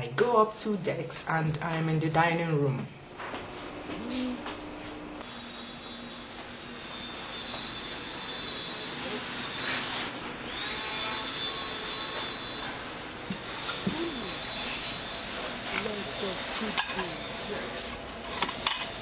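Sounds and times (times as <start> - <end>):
steady hum: 0.0 - 19.0
high-pitched whine: 3.9 - 19.0
indistinct voices: 13.8 - 14.5, 15.6 - 17.8
dishes clinking: 16.5 - 17.2, 18.3 - 19.0.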